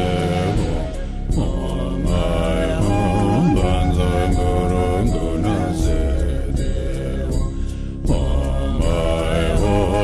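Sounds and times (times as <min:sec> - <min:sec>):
mantra chanting: 0:00.0 - 0:07.5, 0:08.1 - 0:10.0
low steady accompaniment: 0:00.0 - 0:10.0.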